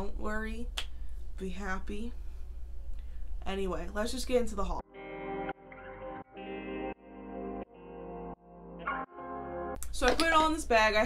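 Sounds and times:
guitar chords with heavy effects: 4.8 - 9.8.

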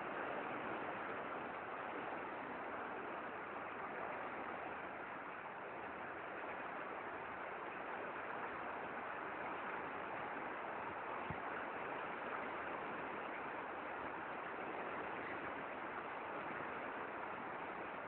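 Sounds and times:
water rushing through lock: 0.0 - 18.0.

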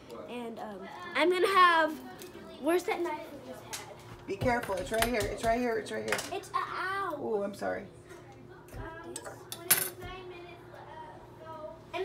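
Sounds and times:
kitchenware clinking: 4.4 - 6.4, 9.1 - 10.1.

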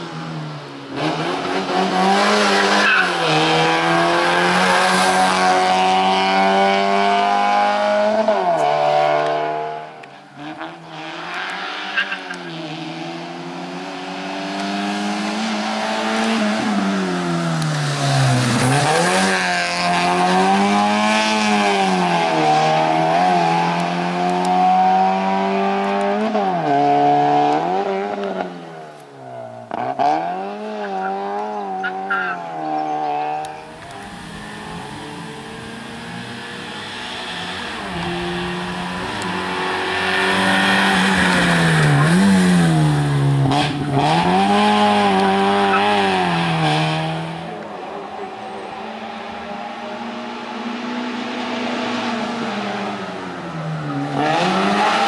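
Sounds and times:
race car engine revving: 0.0 - 29.0, 29.6 - 55.0.

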